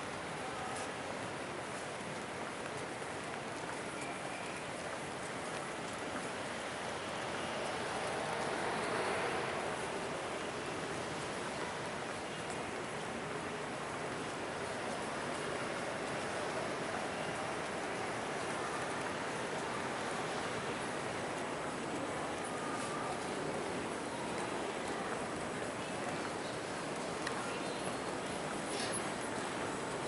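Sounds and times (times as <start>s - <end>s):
airport terminal background hiss: 0.0s - 30.0s.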